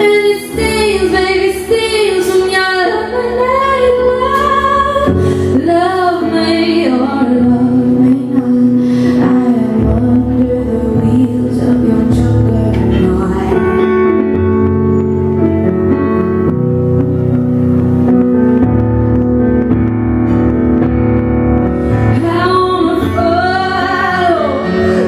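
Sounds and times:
woman singing: 0:00.0 - 0:14.7, 0:21.9 - 0:25.0
electric keyboard piano chords: 0:00.0 - 0:25.0.

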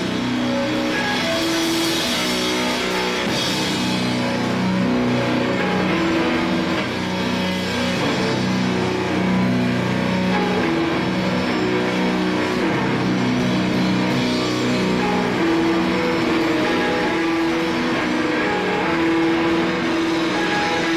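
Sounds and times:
drums and cymbals: 0:00.0 - 0:20.9
electric bass long low notes: 0:00.0 - 0:20.9.

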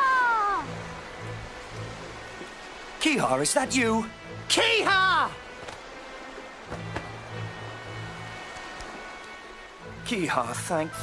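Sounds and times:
seagull crying: 0:00.0 - 0:00.7
soft background music: 0:00.0 - 0:11.0.

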